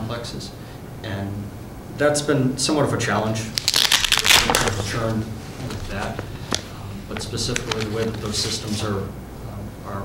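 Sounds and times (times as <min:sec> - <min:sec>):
man talking: 0:00.0 - 0:10.0
paper rustle: 0:03.5 - 0:09.0.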